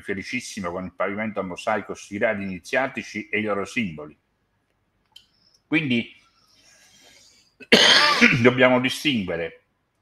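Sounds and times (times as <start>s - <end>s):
faint breath: 6.2s - 7.6s
man coughing: 7.6s - 8.6s.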